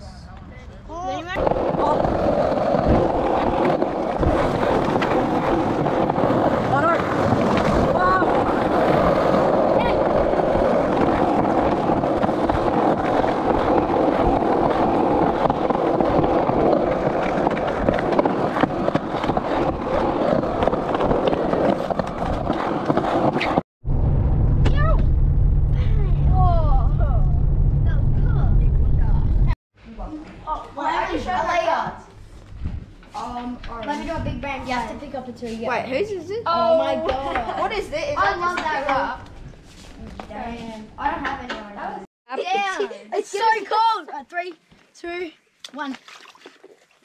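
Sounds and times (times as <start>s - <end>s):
skateboard wheels rolling on asphalt: 1.1s - 23.6s.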